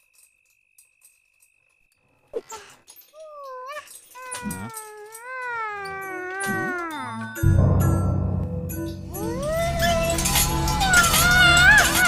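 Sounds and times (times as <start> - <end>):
cat yowling: 9.2 - 12.0.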